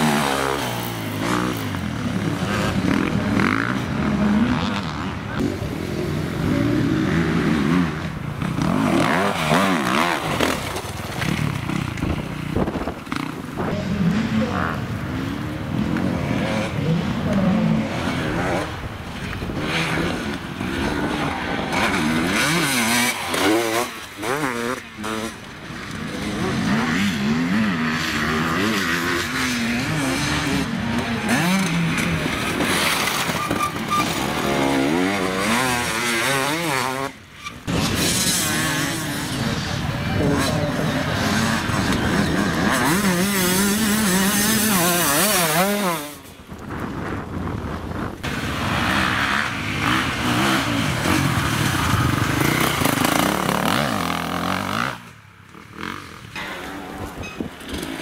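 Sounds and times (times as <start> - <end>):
dirt bike engines revving: 0.0 - 58.0.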